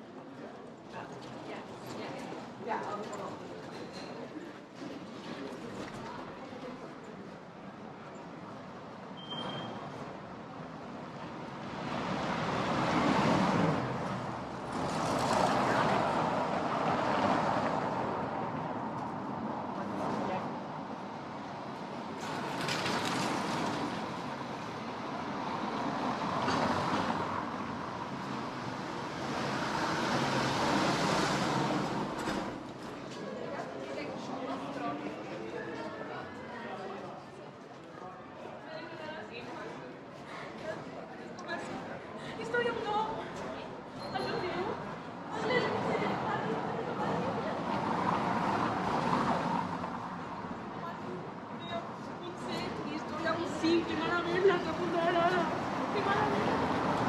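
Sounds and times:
vehicles passing: 9.9 - 34.3, 40.5 - 57.0
people talking: 40.6 - 48.0.

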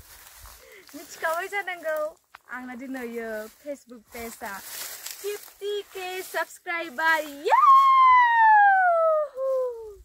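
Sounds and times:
woman whooping: 7.4 - 10.0.

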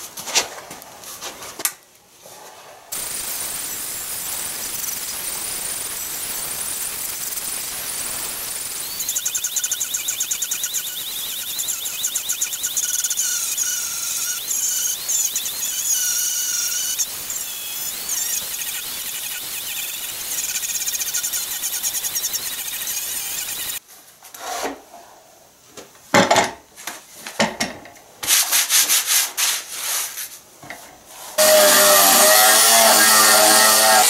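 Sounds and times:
abrasive disc rasping on wood: 3.0 - 23.8, 31.4 - 34.0
angle grinder motor whine: 3.2 - 23.8, 31.4 - 34.0.

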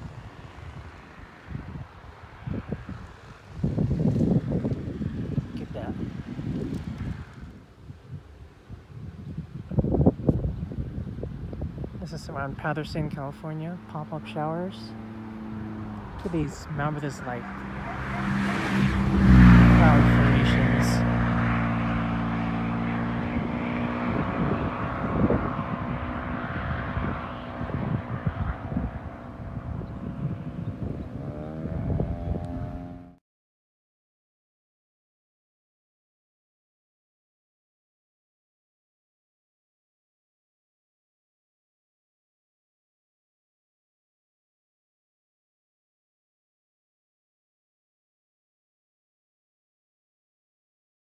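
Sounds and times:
wind buffeting microphone: 0.0 - 33.1
vehicle engine hum: 0.0 - 33.2.

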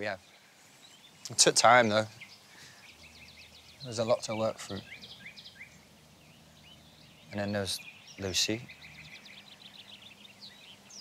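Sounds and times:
songbirds chirping: 0.0 - 11.0.

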